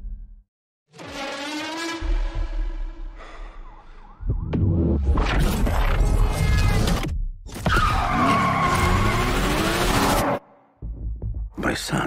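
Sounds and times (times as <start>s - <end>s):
car tyres screeching: 7.6s - 10.4s.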